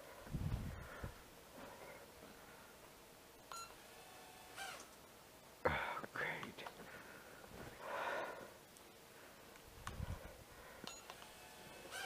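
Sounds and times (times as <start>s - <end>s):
short faint beeps: 3.5s - 3.8s, 10.8s - 11.2s.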